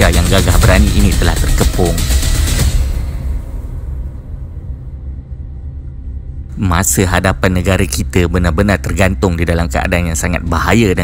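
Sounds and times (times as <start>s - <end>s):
low rumbling bass drone: 0.0s - 6.7s.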